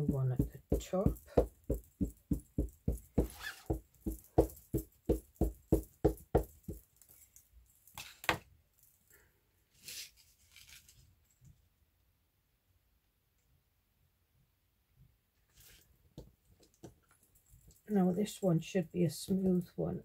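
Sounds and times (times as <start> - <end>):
ink pad tapping on stamp: 0.0 - 6.8.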